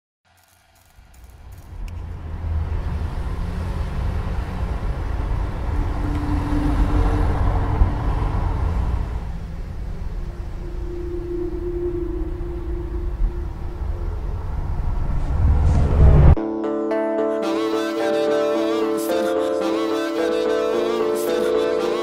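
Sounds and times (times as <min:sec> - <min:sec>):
low street rumble: 0:00.6 - 0:16.4
faint humming tone: 0:09.4 - 0:15.8.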